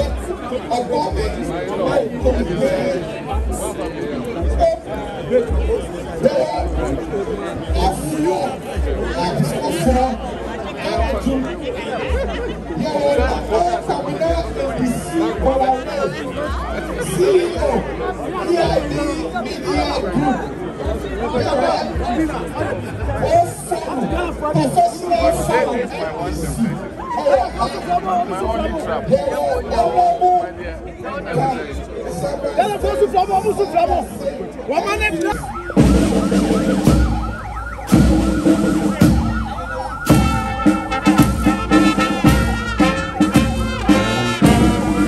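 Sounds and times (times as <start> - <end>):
overlapping chatter of people: 0.0 - 45.0
brass band playing a march: 35.2 - 45.0.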